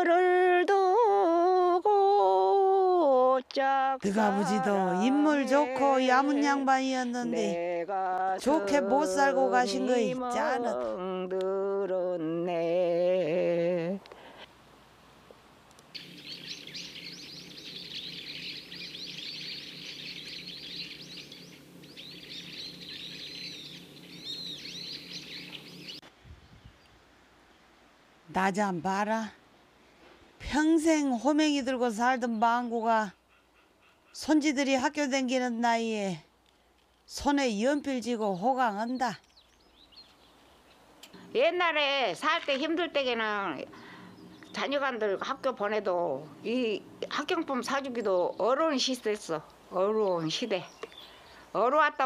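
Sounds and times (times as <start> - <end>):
woman's voice: 0.0 - 14.0, 28.3 - 29.4, 30.4 - 33.2, 34.2 - 36.3, 37.1 - 39.2, 41.2 - 50.9, 51.5 - 52.0
low steady hum: 0.0 - 33.0
faint bird chirps: 15.9 - 27.6, 32.0 - 34.4, 50.0 - 51.6
birds chirping and singing: 16.0 - 26.8, 37.6 - 40.9, 42.5 - 51.5.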